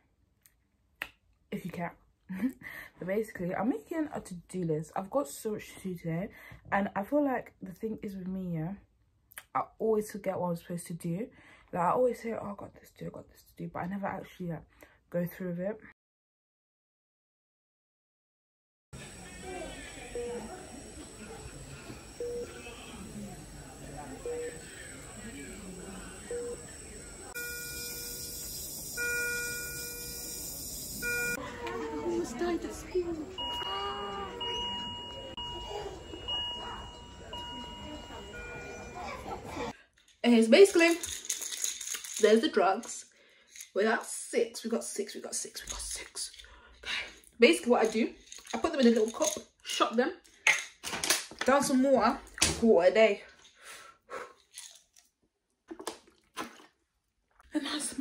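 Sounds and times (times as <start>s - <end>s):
background voices: 19.0s - 27.4s
electronic alarm tones: 20.0s - 23.2s, 24.2s - 25.2s, 26.1s - 31.4s, 33.1s - 39.5s.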